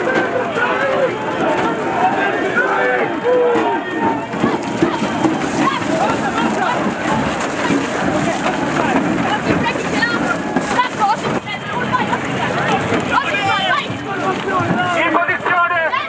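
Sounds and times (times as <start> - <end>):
many voices shouting: 0.0 - 16.0
boots tramping on gravel: 3.6 - 12.3.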